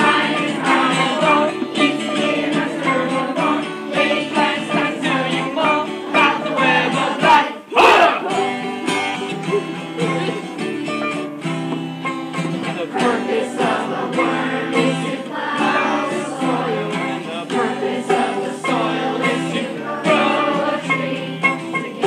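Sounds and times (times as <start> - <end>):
hand drum: 0.0 - 7.4, 8.3 - 22.0
group of voices singing: 0.0 - 22.0
strummed acoustic guitar: 0.0 - 22.0
loud whooping shout: 7.7 - 8.3.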